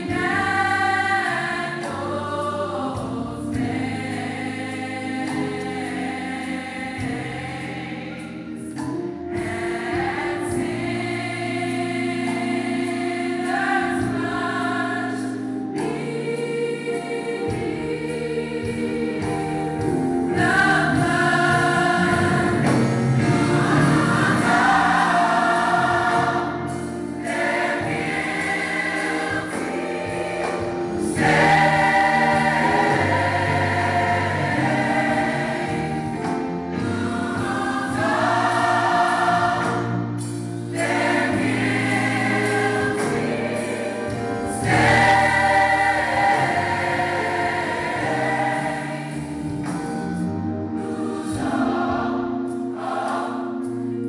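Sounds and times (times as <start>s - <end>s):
gospel choir singing: 0.0s - 54.0s
low steady accompaniment: 0.0s - 54.0s.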